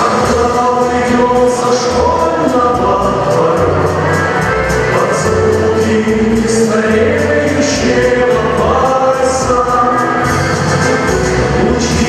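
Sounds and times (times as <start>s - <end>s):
backing music: 0.0s - 12.0s
male trio singing in harmony: 0.0s - 12.0s.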